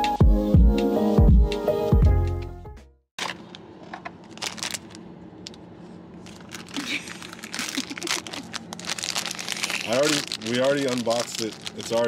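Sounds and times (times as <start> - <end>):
foil and cardboard crinkling: 4.3 - 5.0, 6.2 - 12.0.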